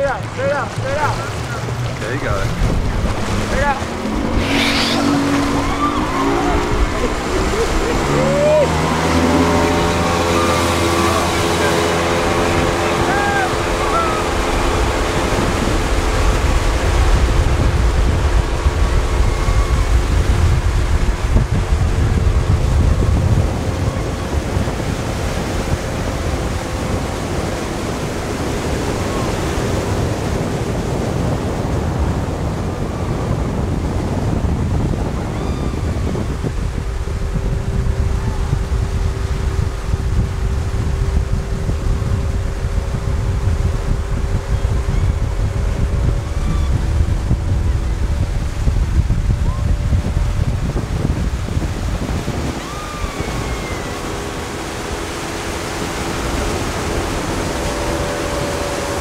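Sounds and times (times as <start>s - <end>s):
motorboat engine drone: 0.0s - 59.0s
rushing water: 0.0s - 59.0s
wind buffeting the microphone: 0.0s - 59.0s.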